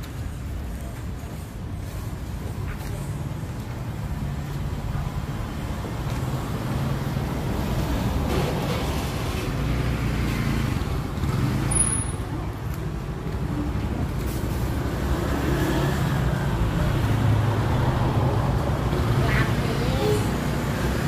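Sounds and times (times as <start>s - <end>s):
traffic rumbling: 0.0s - 21.0s.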